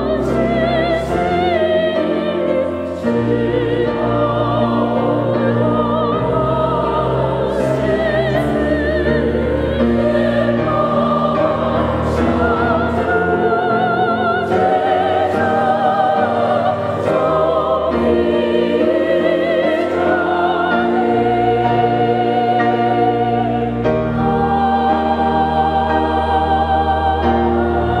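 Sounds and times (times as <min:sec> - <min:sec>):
choir singing a hymn: 0:00.0 - 0:28.0.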